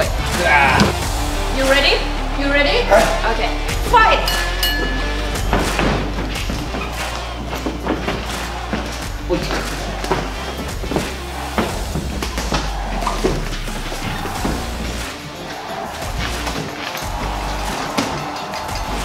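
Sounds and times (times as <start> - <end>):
background music with steady bass: 0.0 - 19.0
short ringing tone: 4.3 - 5.5.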